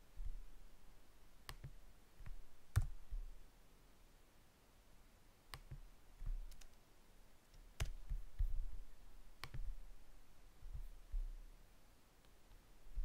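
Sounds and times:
soft low bumps: 0.0 - 0.7, 10.6 - 11.5
computer mouse clicks: 1.5 - 3.0, 5.5 - 6.8, 7.5 - 8.5, 9.4 - 9.7.

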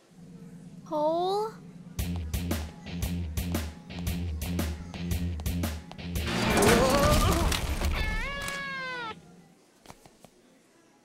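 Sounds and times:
cat-like meow: 6.8 - 9.2.

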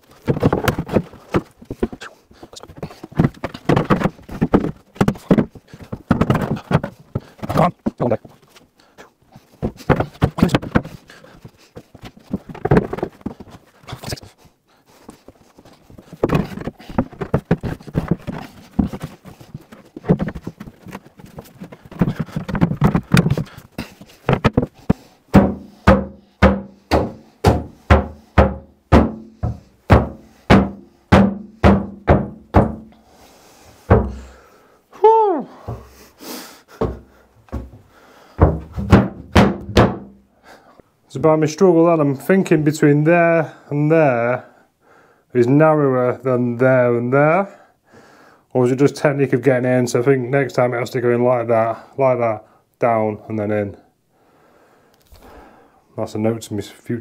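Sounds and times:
board knocking and scraping on wood: 0.0 - 8.5, 9.6 - 14.2, 15.1 - 32.9, 33.9 - 34.4, 36.8 - 40.2
heavy thumps with low ring: 24.4 - 32.9, 33.9 - 34.4, 38.4 - 40.1.

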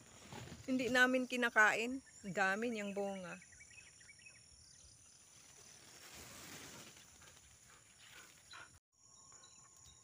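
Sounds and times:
soft rustle: 5.2 - 8.5.

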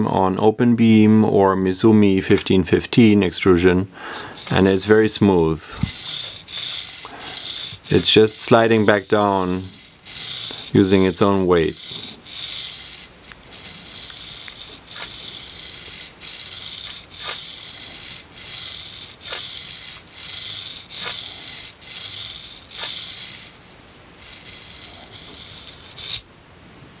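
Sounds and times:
balls rattling along a rail: 4.1 - 26.2.

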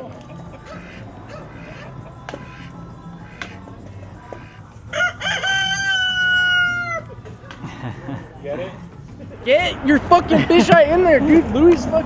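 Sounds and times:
rooster crowing: 0.3 - 7.1.

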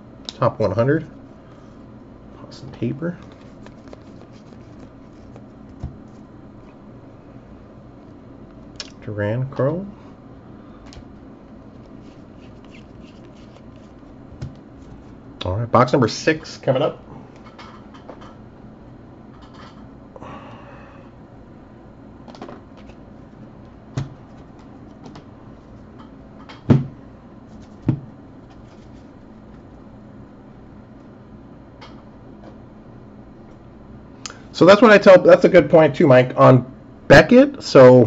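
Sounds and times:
packaging rustling: 3.2 - 6.3.

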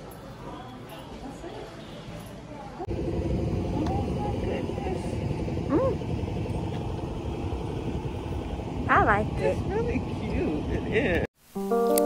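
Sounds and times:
vehicle noise: 0.0 - 11.3.

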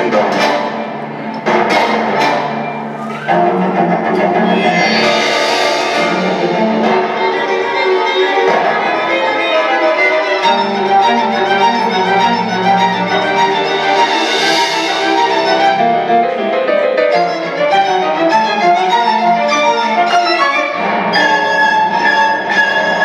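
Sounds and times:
orchestral strings sustained notes: 0.0 - 23.0.

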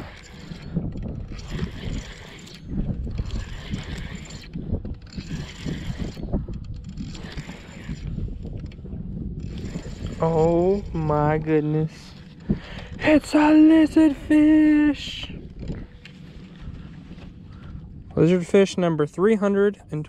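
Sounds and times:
spinning reel cranking: 0.0 - 14.2
low rumble: 0.0 - 20.0.

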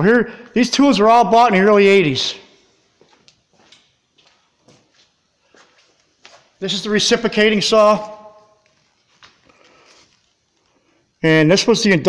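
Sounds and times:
soft rustle: 8.6 - 11.0.

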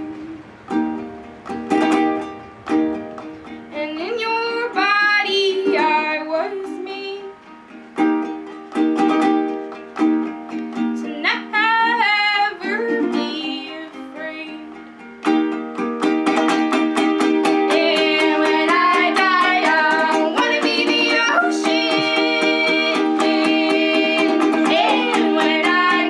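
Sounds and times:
ukulele strumming: 0.0 - 26.0
women singing: 3.7 - 7.3, 11.0 - 14.8, 17.4 - 26.0.

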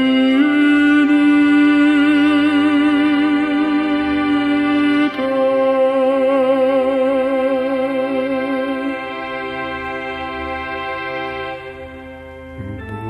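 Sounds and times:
tenor voice singing with vibrato: 0.0 - 10.6, 11.3 - 13.0
pipe organ chords: 0.0 - 13.0.

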